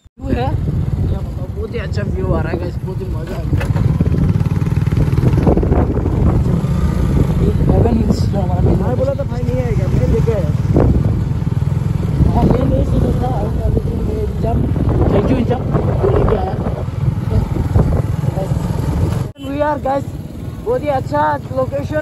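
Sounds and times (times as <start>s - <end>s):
motorcycle engine rumbling: 0.0s - 22.0s
voices: 7.2s - 22.0s.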